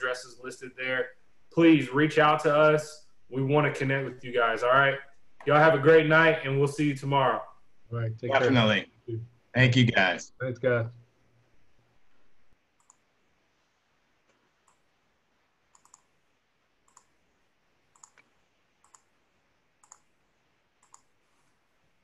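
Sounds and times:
faint sharp clicks: 12.8 - 13.1.

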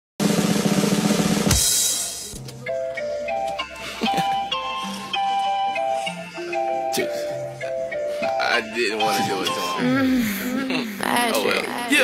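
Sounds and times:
fast drum roll: 0.2 - 2.1
cymbal crash: 0.2 - 2.3.

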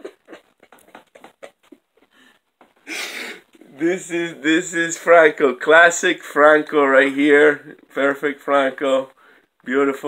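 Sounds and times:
man laughing softly: 0.0 - 2.2.

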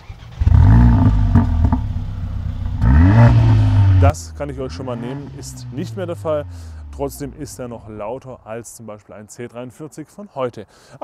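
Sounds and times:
car engine revving: 0.1 - 8.0.

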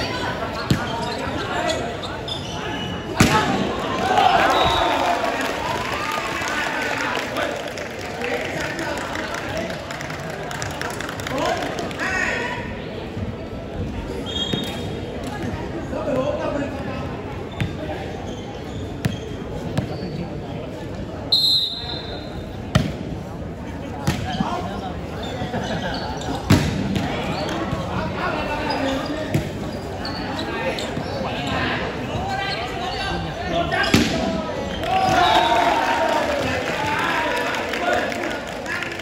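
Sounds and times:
crowd chatter: 0.0 - 39.0
whistle blast: 21.3 - 22.3.

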